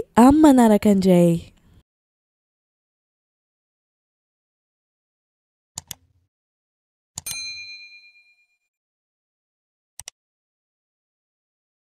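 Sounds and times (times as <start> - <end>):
bright bell ding: 7.2 - 8.6.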